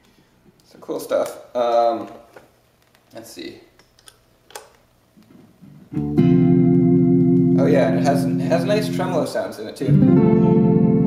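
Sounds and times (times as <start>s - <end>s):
electric guitar chord with warble: 5.7s - 9.2s, 9.9s - 11.0s.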